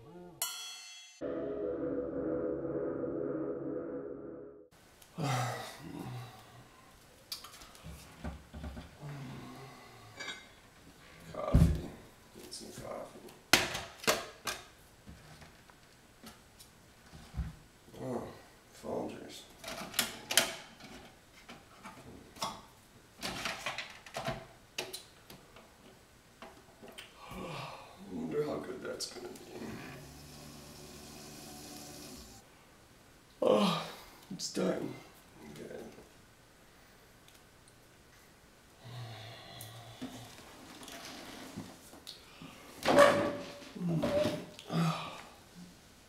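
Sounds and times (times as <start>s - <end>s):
chair scraping across floor: 40.0s - 41.9s.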